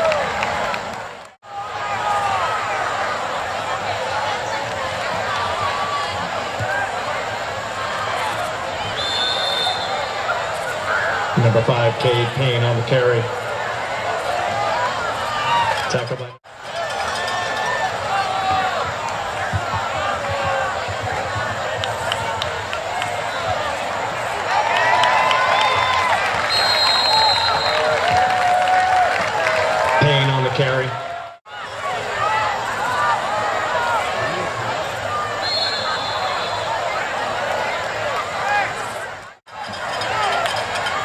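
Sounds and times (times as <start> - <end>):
crowd talking and shouting: 0.0 - 41.0
referee whistle blasts: 8.8 - 10.1, 25.6 - 27.9, 35.4 - 36.7.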